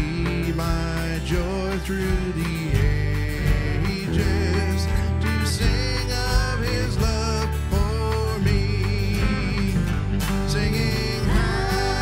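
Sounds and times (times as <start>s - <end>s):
bass: 0.0s - 12.0s
drums: 0.0s - 12.0s
electric guitars: 0.0s - 12.0s
keyboards: 0.0s - 12.0s
people singing: 0.0s - 12.0s.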